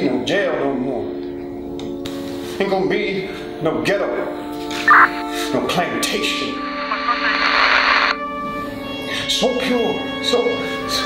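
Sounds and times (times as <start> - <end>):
static hiss burst: 6.5 - 8.2.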